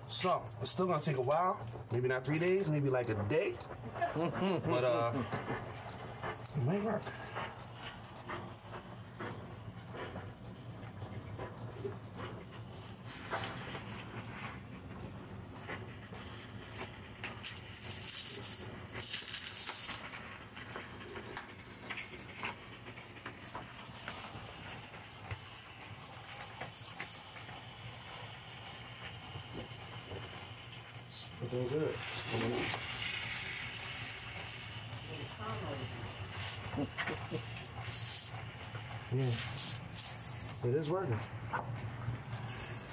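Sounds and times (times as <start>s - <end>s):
hiss: 13.0s - 14.5s, 16.1s - 20.3s, 31.1s - 38.4s, 39.0s - 40.5s.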